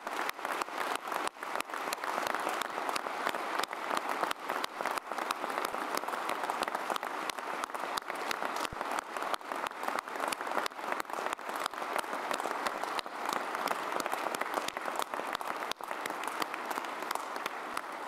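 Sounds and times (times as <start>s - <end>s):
audience applause: 0.0s - 18.0s.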